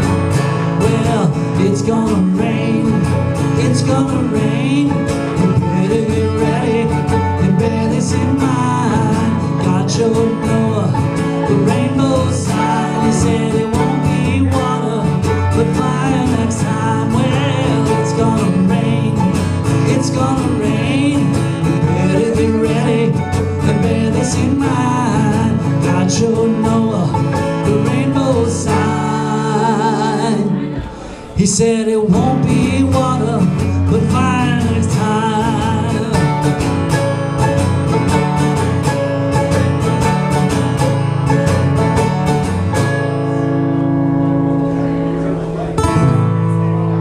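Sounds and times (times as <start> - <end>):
acoustic guitar: 0.0 - 47.0
mandolin: 0.0 - 47.0.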